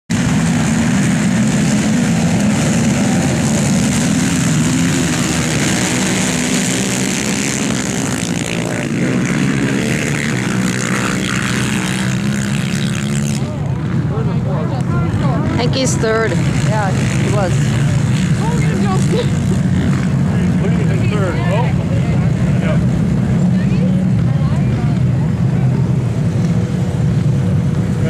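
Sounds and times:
racing quad engines revving: 0.1s - 28.0s.

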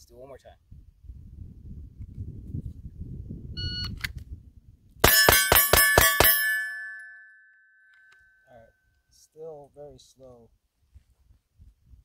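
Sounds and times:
pistol shots: 5.0s - 6.6s
steel targets ringing: 5.0s - 8.1s.

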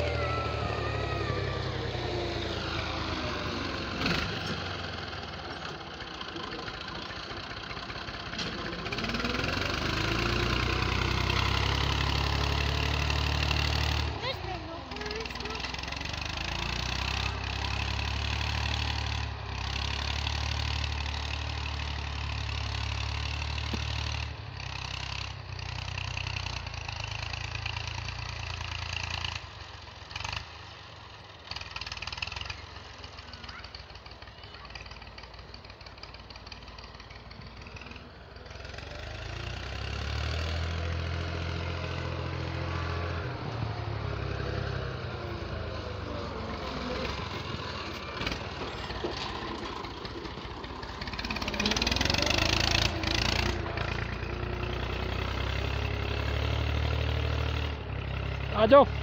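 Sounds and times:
tractor engine running: 0.0s - 59.0s.

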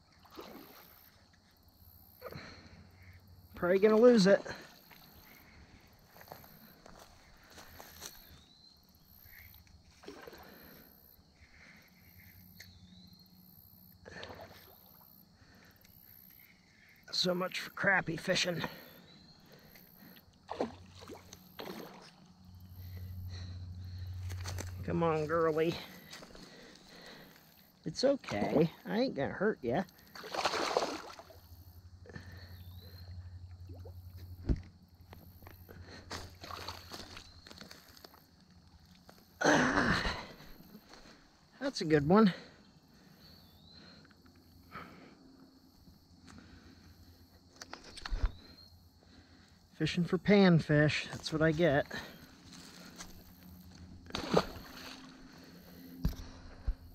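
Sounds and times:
fish splashing in shallow water: 0.0s - 1.3s, 9.2s - 11.1s, 18.8s - 23.0s, 29.9s - 31.6s, 36.1s - 38.0s, 52.2s - 55.9s
steady low hum: 1.4s - 28.8s, 29.5s - 56.9s.

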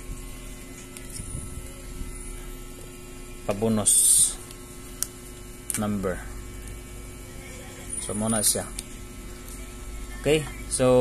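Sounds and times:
low electrical mains hum: 0.0s - 11.0s.

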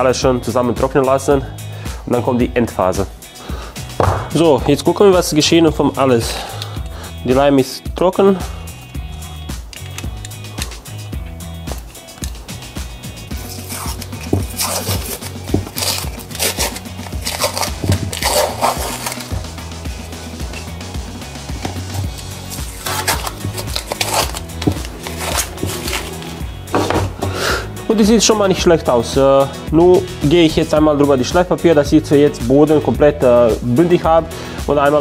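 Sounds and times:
background music with bass: 0.0s - 35.0s
masking tape ripping: 13.3s - 19.7s, 21.7s - 26.4s.

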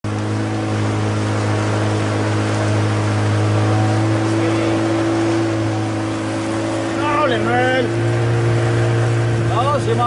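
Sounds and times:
hiss of wind and water: 0.0s - 10.0s
outboard motor running: 0.0s - 10.0s.

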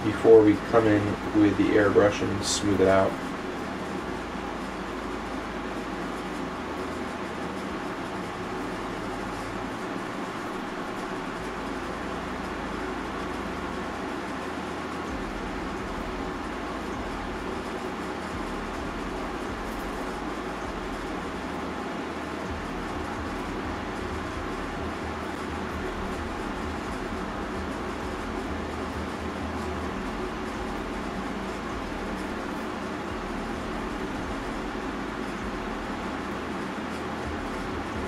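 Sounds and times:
steady background noise: 0.0s - 38.0s.

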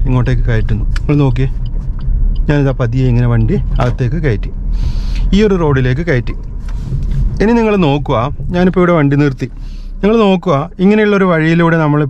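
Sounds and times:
man talking: 0.0s - 1.6s, 2.4s - 4.6s, 5.2s - 6.4s, 7.4s - 12.0s
car engine and tyres humming: 0.0s - 12.0s.

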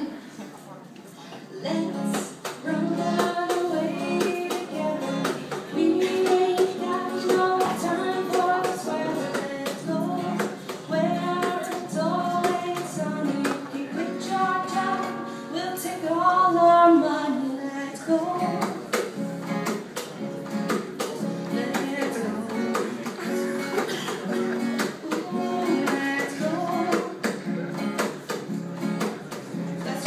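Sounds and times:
woman singing: 1.6s - 19.0s, 21.2s - 23.3s, 24.8s - 28.1s, 29.6s - 30.0s
strummed guitar: 1.6s - 30.0s.

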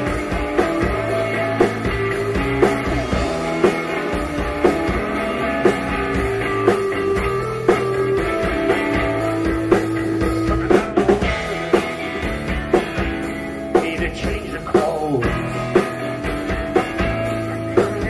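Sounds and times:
electric guitar sustained notes: 0.0s - 13.7s
bass guitar: 0.0s - 18.0s
drum kit: 0.0s - 18.0s.

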